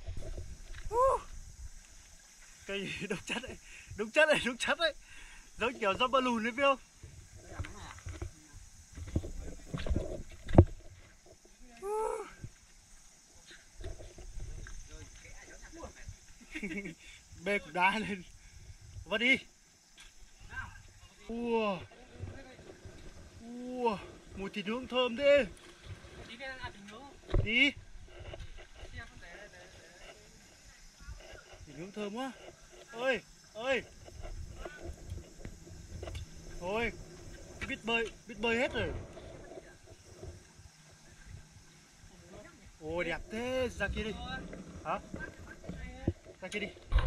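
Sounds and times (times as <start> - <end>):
low rumbling noise: 33.8 - 40.5.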